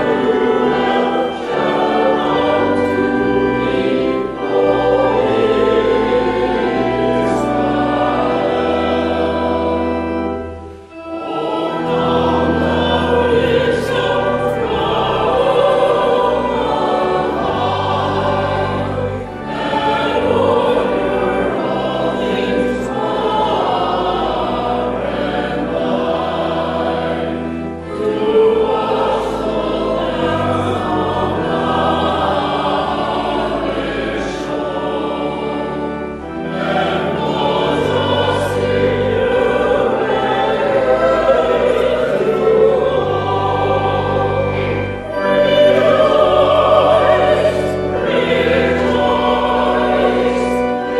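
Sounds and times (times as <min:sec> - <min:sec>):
small choir singing a hymn: 0:00.0 - 0:50.9
sustained organ accompaniment: 0:00.0 - 0:50.9.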